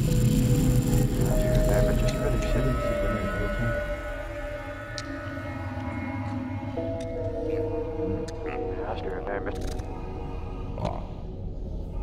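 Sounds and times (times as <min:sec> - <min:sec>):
music with long held note: 0:00.0 - 0:12.0.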